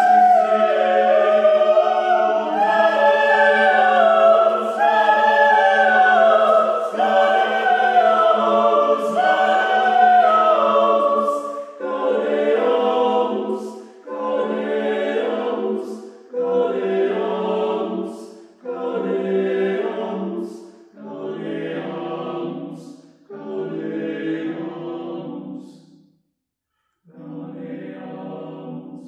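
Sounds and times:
men's choir singing: 0:00.0 - 0:25.7, 0:27.1 - 0:29.0.

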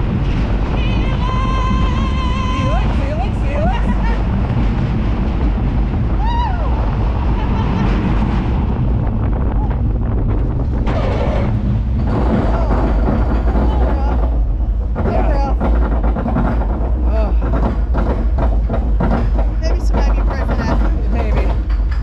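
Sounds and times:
roller coaster rumbling on track: 0:00.0 - 0:22.0.

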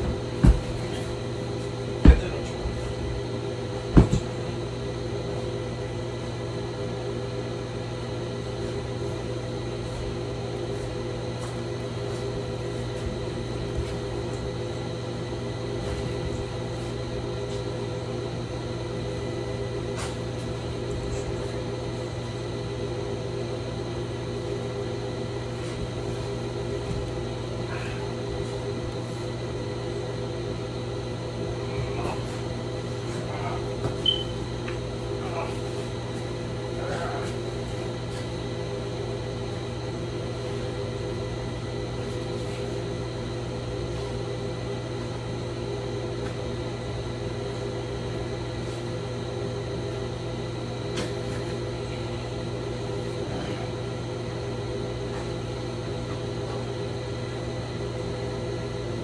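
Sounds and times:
mechanical hum with fixed tones: 0:00.0 - 0:59.0.

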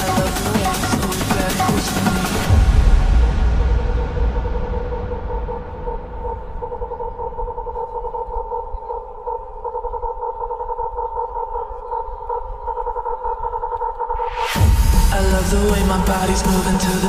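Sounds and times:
wavering synthesizer note: 0:00.0 - 0:13.4
low rumble: 0:01.8 - 0:09.6, 0:14.2 - 0:17.0.

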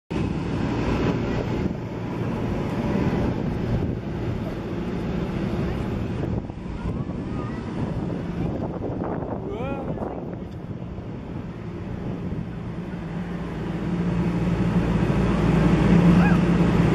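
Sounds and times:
wind buffeting microphone: 0:00.1 - 0:16.9.

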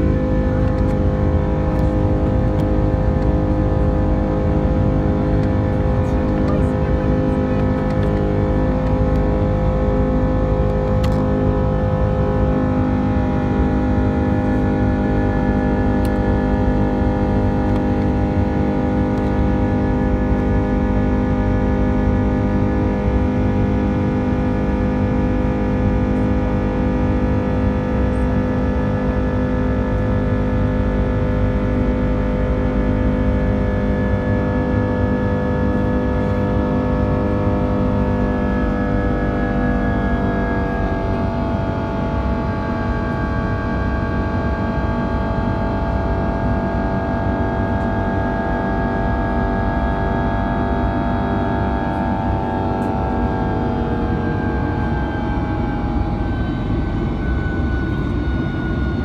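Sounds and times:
jet engine roar in cabin: 0:00.0 - 0:59.0.

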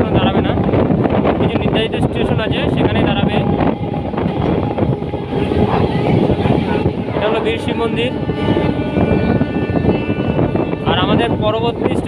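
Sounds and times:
train wheels rumbling and rattling: 0:00.0 - 0:12.0.

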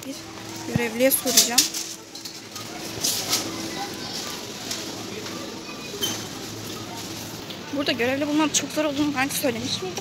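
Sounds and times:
indistinct voices of shoppers: 0:00.0 - 0:10.0.

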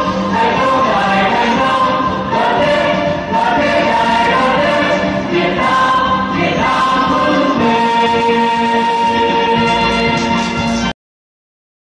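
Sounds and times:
choir singing held notes: 0:00.0 - 0:10.8.

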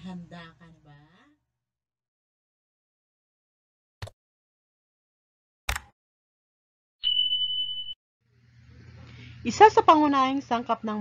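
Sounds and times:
high-pitched electronic beep: 0:07.0 - 0:08.0.

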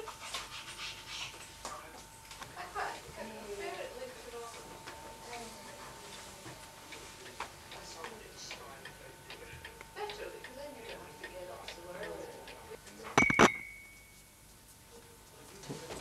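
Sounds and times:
muffled conversation: 0:01.1 - 0:13.5, 0:14.8 - 0:16.0
wall clock ticking: 0:06.8 - 0:12.7
ringing ding: 0:13.2 - 0:14.3.

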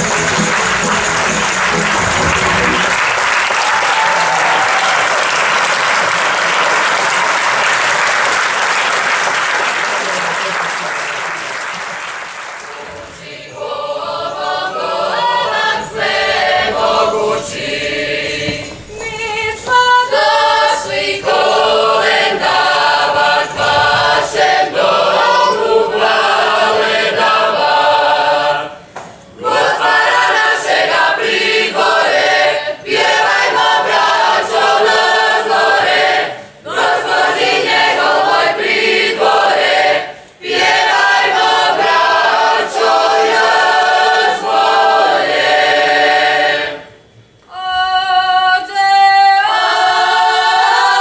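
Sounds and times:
mixed choir singing a carol: 0:00.0 - 0:51.0.

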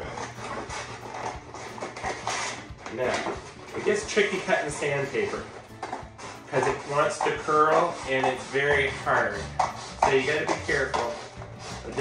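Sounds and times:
scissors cutting sandpaper: 0:00.1 - 0:12.0.

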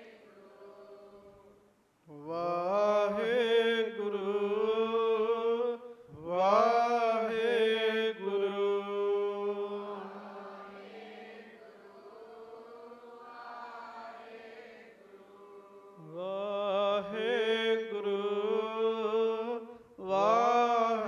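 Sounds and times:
man chanting in long held notes: 0:15.0 - 0:21.0.

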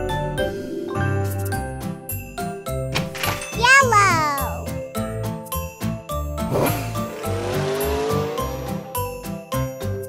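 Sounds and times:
children's music with bells: 0:00.9 - 0:10.0
cartoon toy car rattle and rev: 0:06.5 - 0:08.6.

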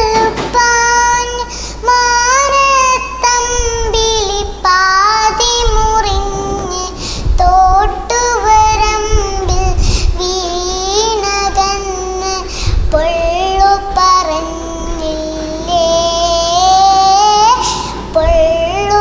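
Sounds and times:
girl singing: 0:00.0 - 0:19.0.

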